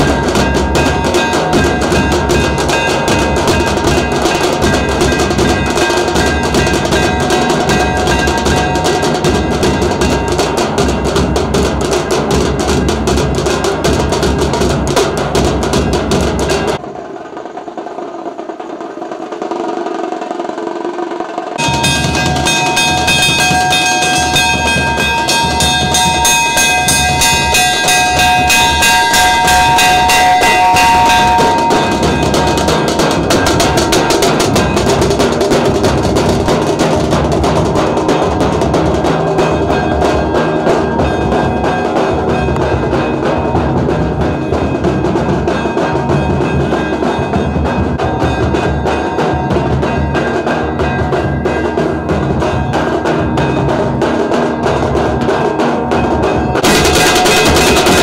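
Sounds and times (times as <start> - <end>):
rapid steady drumming: 0.0 - 58.0
held melody line: 21.6 - 52.5.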